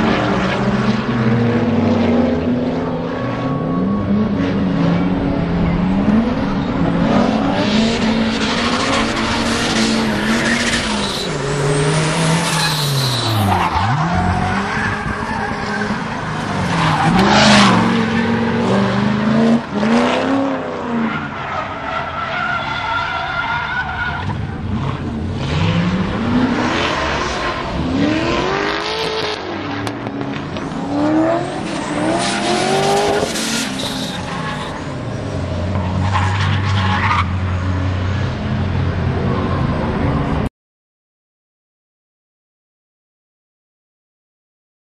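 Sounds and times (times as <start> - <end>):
car engines revving: 0.0 - 40.5
tyre squeal: 7.8 - 16.0, 31.4 - 34.9.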